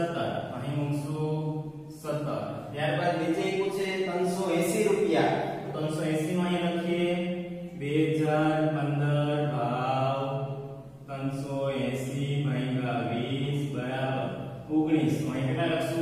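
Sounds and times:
man chanting drawn-out syllables: 0.0 - 16.0.

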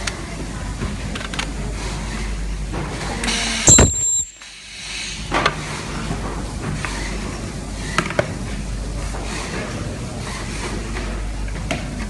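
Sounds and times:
ultrasonic welder screech: 3.7 - 4.3.

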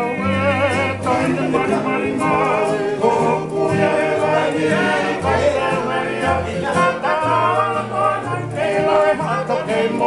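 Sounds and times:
man singing with vibrato: 0.0 - 10.0
strummed ukulele and guitars: 0.0 - 10.0.

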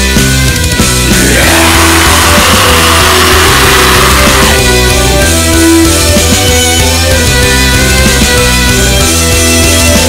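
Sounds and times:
instrumental metal music: 0.5 - 7.5.

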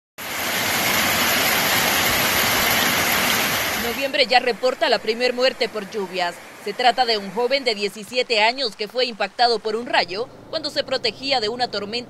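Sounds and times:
heavy rain on street and cars: 0.2 - 12.0.

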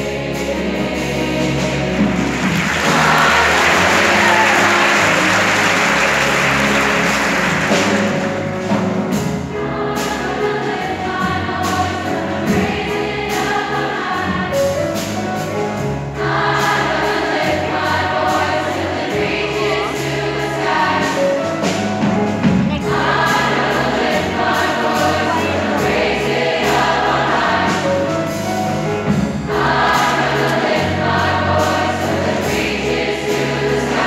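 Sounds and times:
choir singing gospel song: 0.0 - 21.8, 22.7 - 34.0
piano: 0.0 - 34.0
drum kit beat: 0.4 - 34.0.

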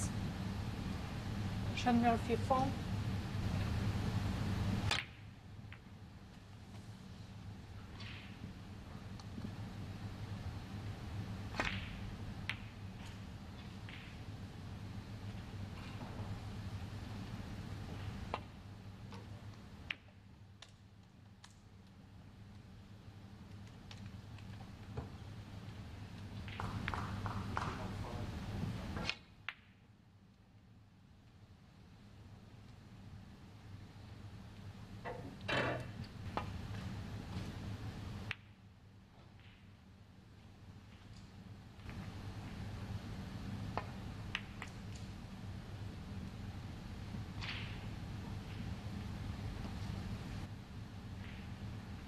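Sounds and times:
cue striking ball: 7.8 - 8.5, 11.5 - 12.8, 13.9 - 14.2, 47.4 - 47.8
snooker balls clicking together: 11.5 - 14.3, 26.1 - 28.0, 43.8 - 45.1, 47.4 - 47.9.

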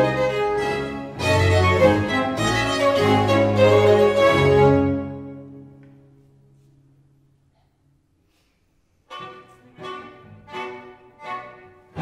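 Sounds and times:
string ensemble accented chords: 0.0 - 5.8.

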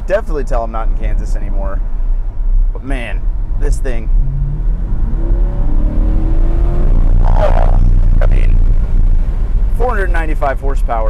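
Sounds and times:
sports car engine under load: 0.0 - 11.0.

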